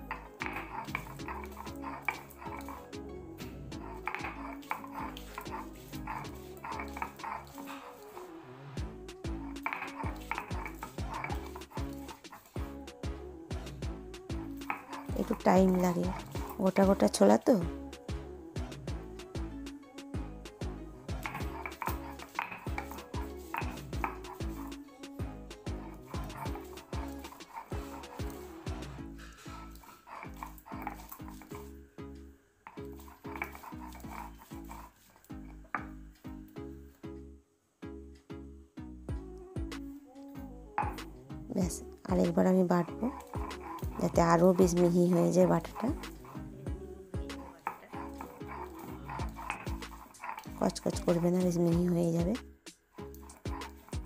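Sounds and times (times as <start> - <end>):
stone roller scraping on slab: 0.0 - 3.0, 3.7 - 8.3, 9.2 - 12.7, 14.5 - 17.5, 21.2 - 31.7, 32.7 - 36.0, 40.8 - 41.1, 42.1 - 52.0, 53.0 - 54.0
background music: 0.0 - 54.0.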